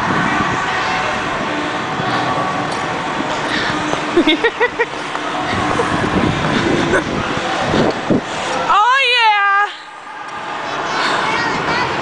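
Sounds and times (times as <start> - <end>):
person laughing: 4.1 - 6.0, 6.6 - 7.2.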